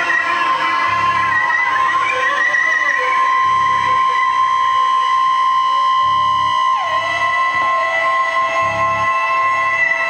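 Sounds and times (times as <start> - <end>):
high-pitched electronic tones: 0.0 - 10.0
throbbing low pulse: 6.0 - 10.0.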